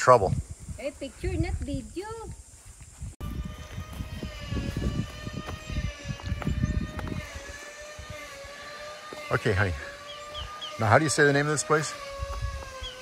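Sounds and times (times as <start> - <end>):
wind buffeting microphone: 0.0 - 9.0, 11.8 - 13.0
high-pitched mechanical whine: 3.0 - 13.0.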